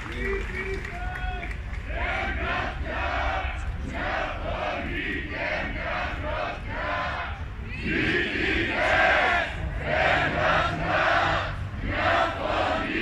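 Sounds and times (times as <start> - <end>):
crowd chanting: 1.8 - 13.0.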